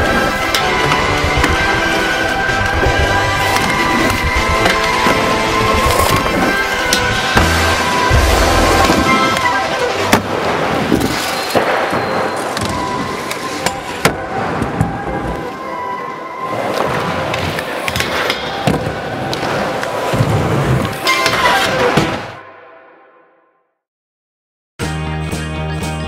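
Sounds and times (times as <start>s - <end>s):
background music: 0.0s - 11.7s, 24.8s - 26.0s
skateboard wheels rolling: 0.0s - 22.4s.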